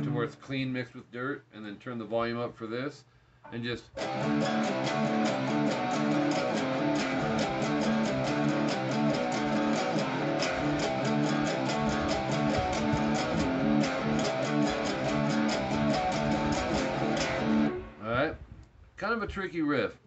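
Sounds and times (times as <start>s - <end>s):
electric guitar power-chord riff: 0.0s - 0.4s, 4.0s - 18.1s.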